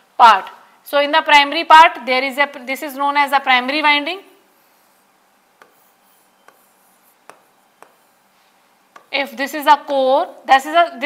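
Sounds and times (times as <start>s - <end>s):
pen strokes on drawing board: 4.5s - 9.2s.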